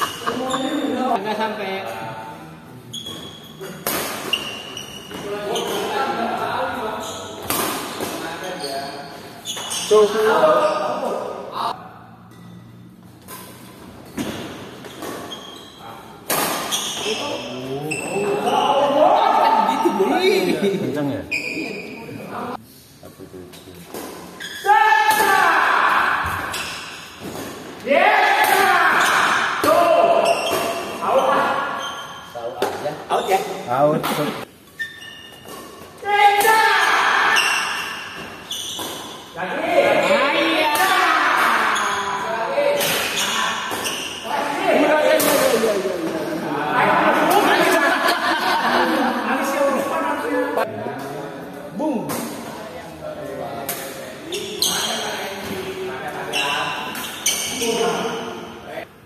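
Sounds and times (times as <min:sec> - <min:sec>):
people shouting: 0:24.6 - 0:26.5, 0:27.8 - 0:30.2, 0:36.0 - 0:37.8, 0:39.4 - 0:42.4.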